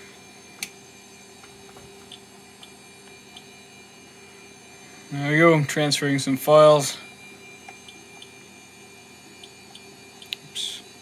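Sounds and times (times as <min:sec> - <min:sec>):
electronic device humming: 0:00.0 - 0:11.0.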